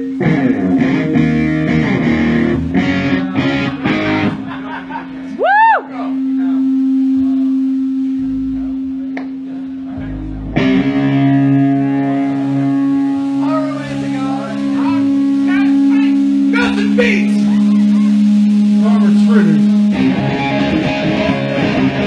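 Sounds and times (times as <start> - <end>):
distorted electric guitar: 0.0 - 22.0
low bass notes: 0.0 - 22.0
punk band playing: 0.0 - 22.0.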